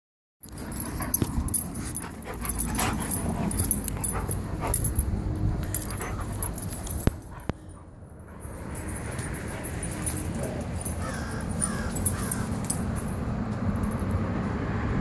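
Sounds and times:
dogs romping: 0.4s - 13.2s
dogs vocalizing: 0.7s - 5.0s, 5.6s - 8.5s, 9.3s - 12.8s.

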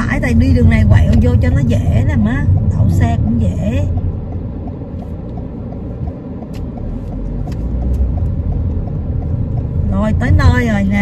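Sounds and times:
low road and engine rumble: 0.0s - 11.0s.

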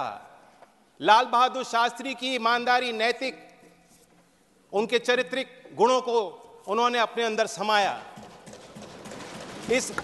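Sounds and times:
man speaking: 1.0s - 3.5s, 9.6s - 10.0s
thumping on desks: 8.0s - 10.0s.

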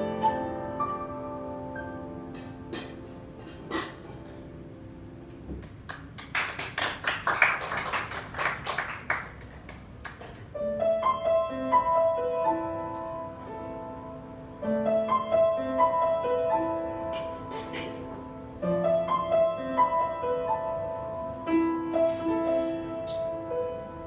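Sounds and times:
jazz piano: 0.0s - 24.0s
audience clapping: 5.3s - 10.5s.

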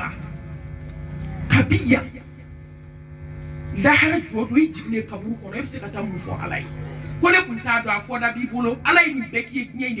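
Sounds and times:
electrical hum: 0.0s - 10.0s
woman speaking: 1.4s - 2.2s, 3.8s - 10.0s.

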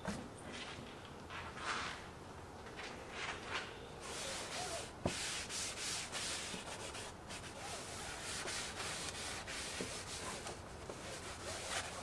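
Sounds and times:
cloth wiping plastic: 4.0s - 12.0s.

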